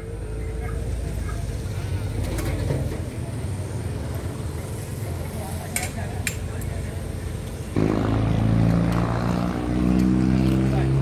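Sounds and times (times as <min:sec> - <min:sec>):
people talking in background: 0:00.0 - 0:11.0.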